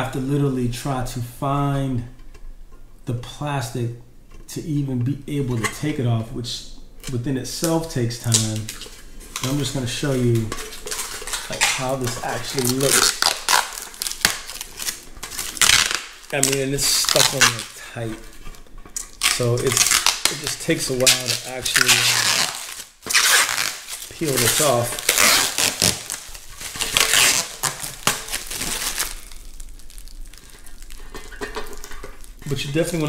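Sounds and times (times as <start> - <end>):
plastic film peeling crackling: 7.0 - 33.0.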